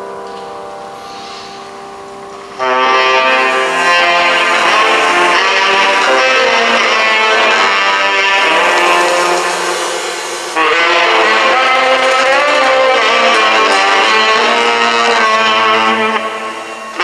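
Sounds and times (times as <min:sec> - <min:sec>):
piano: 0:00.0 - 0:17.0
drums: 0:02.3 - 0:17.0
tenor saxophone: 0:02.4 - 0:17.0.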